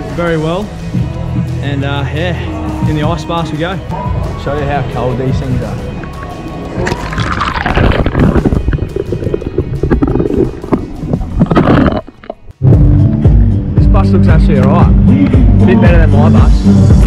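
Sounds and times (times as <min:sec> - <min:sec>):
loud music with heavy bass: 0:06.4 - 0:17.0
muffled churning water and ice: 0:06.8 - 0:12.6.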